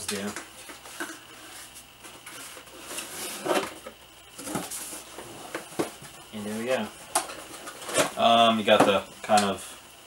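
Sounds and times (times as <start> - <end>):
cardboard scraping and rustling: 0.8 - 6.1.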